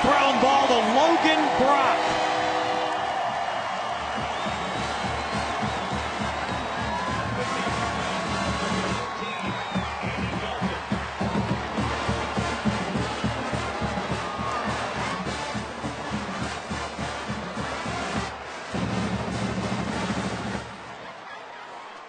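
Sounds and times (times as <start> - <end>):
steady drum beat: 0.0 - 20.9
marching band brass: 0.0 - 21.2.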